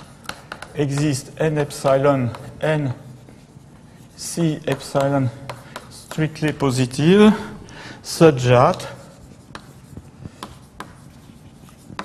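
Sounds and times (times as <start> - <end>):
chalk tapping on board: 0.0 - 6.8, 8.7 - 12.0
chalk scratching on chalkboard: 0.0 - 12.0.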